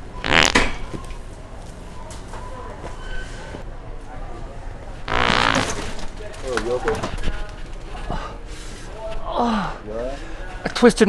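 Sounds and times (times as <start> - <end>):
buzzy fart noise: 0.2 - 0.8, 5.0 - 6.1.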